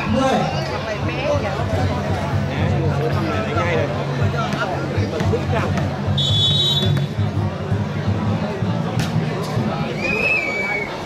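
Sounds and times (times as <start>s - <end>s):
crowd chatter: 0.0s - 11.0s
referee's whistle blast: 6.2s - 7.1s.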